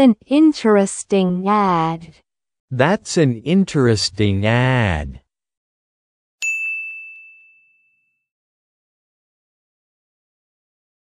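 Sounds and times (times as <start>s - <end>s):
bright electronic chime ding: 6.4s - 8.2s.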